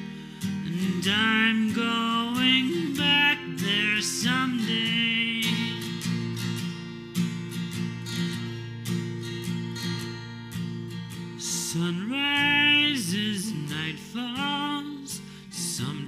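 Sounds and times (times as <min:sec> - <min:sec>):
acoustic guitar strumming: 0:00.0 - 0:16.0
person singing: 0:00.5 - 0:06.0, 0:11.4 - 0:16.0.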